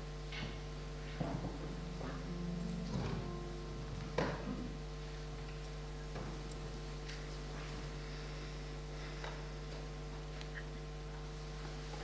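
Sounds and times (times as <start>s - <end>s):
steady electrical hum: 0.0s - 12.0s.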